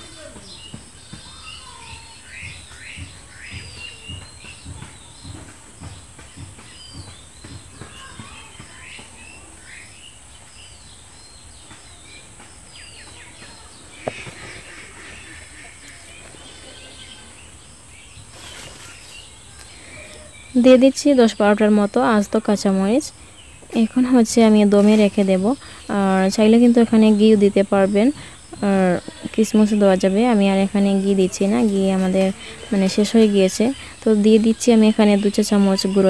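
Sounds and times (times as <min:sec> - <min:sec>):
small birds chirping: 0:00.0 - 0:36.0.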